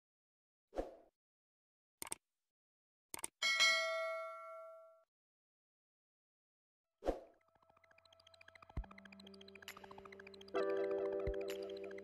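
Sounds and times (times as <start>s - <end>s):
mouse clicks: 2.0s - 2.2s
bell ding: 3.4s - 5.0s.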